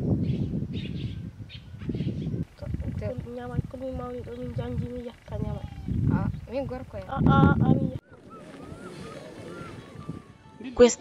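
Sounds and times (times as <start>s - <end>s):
girls talking: 2.6s - 8.6s.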